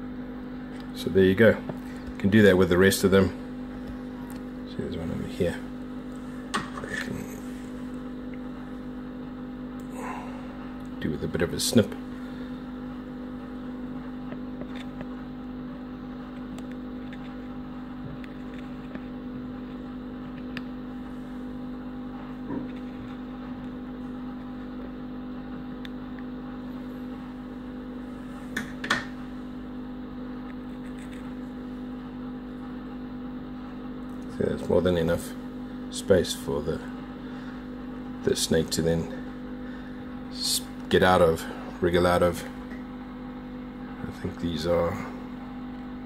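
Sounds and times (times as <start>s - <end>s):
low mechanical hum: 0.0s - 46.0s
scissors snipping eggshell: 30.4s - 31.3s.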